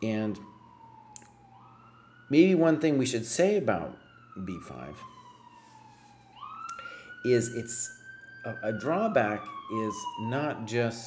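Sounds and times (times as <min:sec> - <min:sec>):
faint siren wailing: 0:00.0 - 0:11.0.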